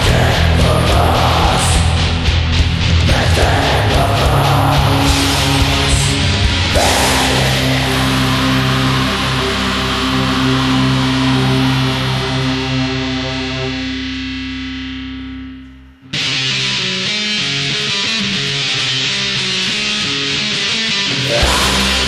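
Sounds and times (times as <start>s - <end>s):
distorted electric guitar: 0.0s - 22.0s.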